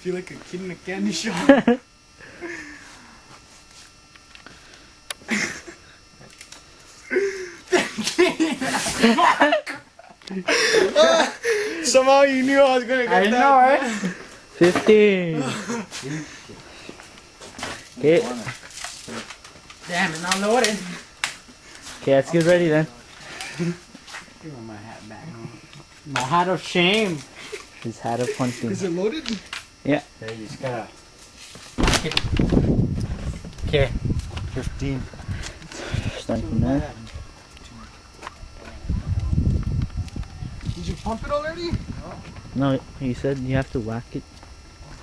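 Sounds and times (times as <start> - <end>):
footsteps on outdoor ground: 37.0 - 45.0.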